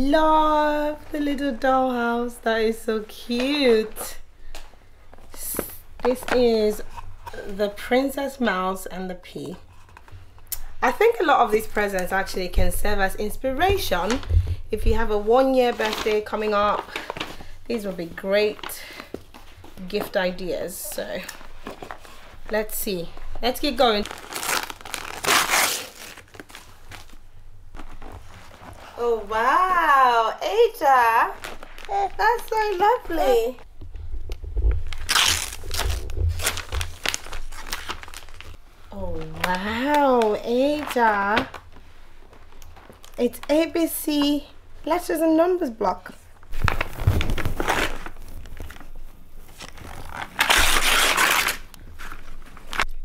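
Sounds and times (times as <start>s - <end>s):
wrapping paper crinkling and tearing: 15.4s - 19.8s, 21.1s - 29.2s, 29.8s - 33.7s, 34.8s - 43.5s, 46.5s - 53.0s
paper tearing and crumpling: 23.6s - 27.2s, 31.3s - 33.5s, 34.9s - 38.6s, 46.5s - 48.8s, 49.6s - 53.0s.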